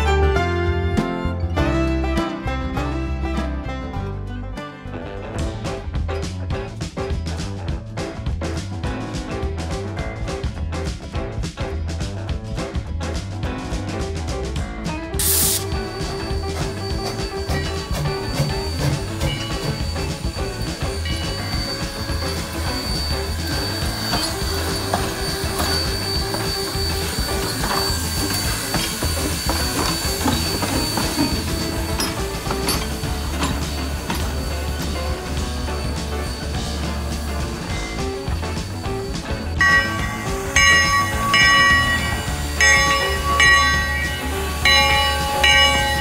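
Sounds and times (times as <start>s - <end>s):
background music: 0.0s - 46.0s
steam locomotive hissing: 15.2s - 46.0s
clanks and knocks: 15.7s - 46.0s.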